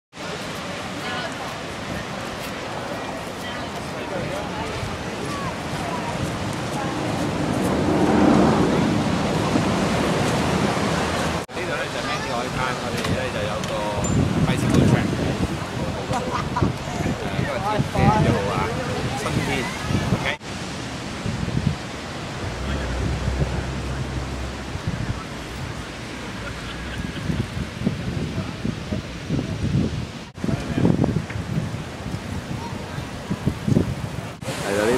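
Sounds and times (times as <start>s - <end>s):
surf on the beach: 0.1s - 34.9s
wind blowing across microphone: 0.2s - 34.9s.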